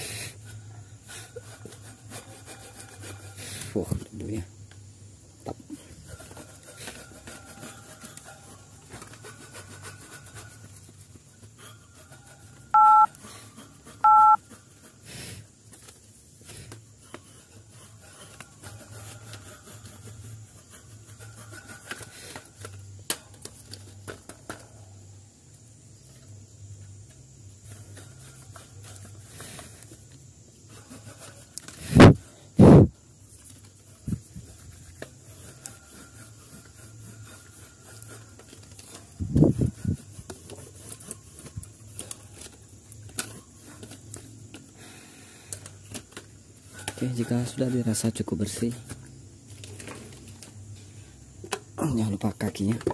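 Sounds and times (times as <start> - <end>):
paintbrush scrubbing wire grille: 0.5 - 3.8, 5.8 - 15.0, 17.0 - 22.1, 27.5 - 31.9, 33.4 - 44.3
short two-tone beeps: 12.8 - 13.1, 14.1 - 14.4.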